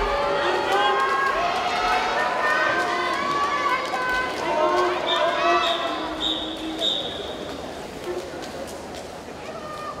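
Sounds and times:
crowd calling out and cheering: 0.0 - 8.1.

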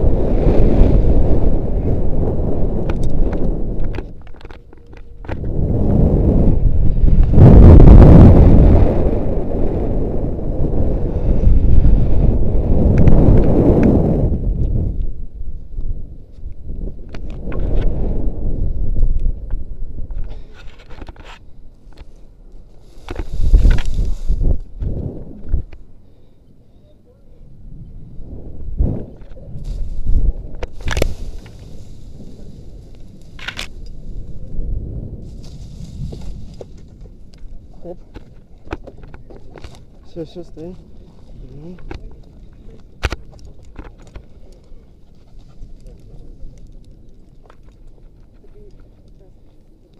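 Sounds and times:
wind rushing over microphone: 0.0 - 49.9.

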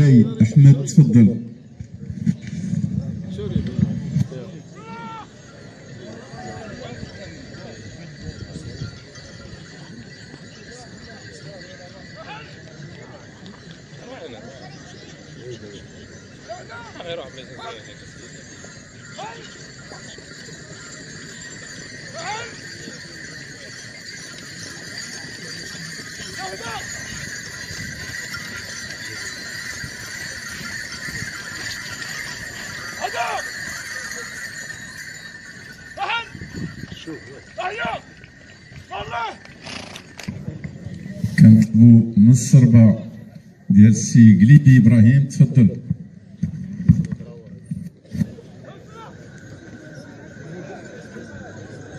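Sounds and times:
crowd chatter: 0.0 - 51.9
hooves clip-clopping on sand: 1.8 - 41.7.

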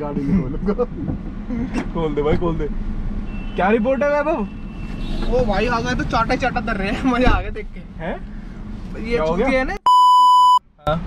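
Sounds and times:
censor bleep: 9.9 - 10.6.

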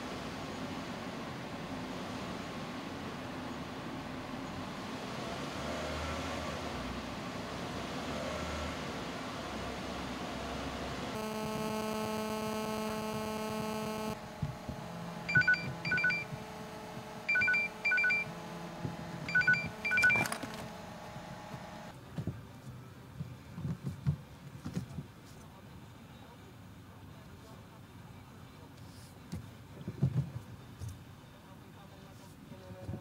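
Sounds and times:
phone two-pitch beeps: 11.2 - 14.2, 15.3 - 16.3, 17.3 - 18.3, 19.3 - 20.3
steady buzzing tone: 11.2 - 19.9
car cabin road noise: 12.3 - 22.0.

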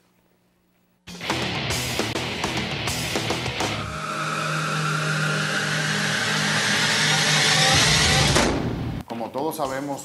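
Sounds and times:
rising sweep: 2.0 - 9.0
engine-like drone: 3.2 - 9.0.

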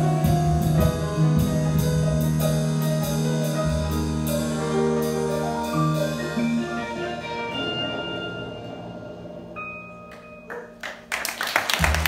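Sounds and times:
jazz trio playing: 0.0 - 11.2
audience applause: 10.5 - 12.0.

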